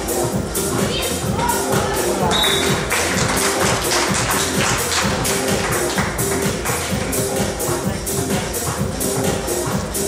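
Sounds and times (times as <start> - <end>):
music with percussive beat: 0.0 - 10.0.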